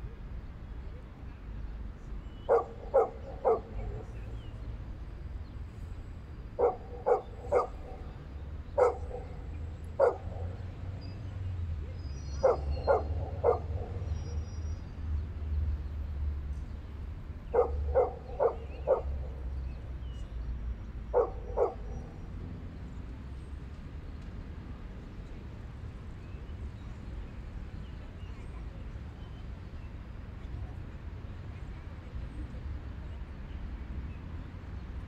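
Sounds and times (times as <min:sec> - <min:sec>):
dog barking: 0:02.5 - 0:04.1, 0:06.6 - 0:08.1, 0:08.8 - 0:10.6, 0:12.3 - 0:14.4, 0:17.5 - 0:19.4, 0:21.1 - 0:22.2.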